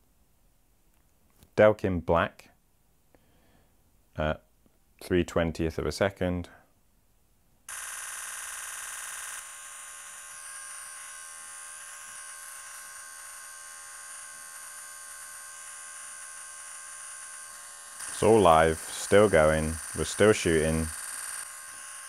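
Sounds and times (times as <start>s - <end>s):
camera shutter buzz: 7.7s - 22.0s.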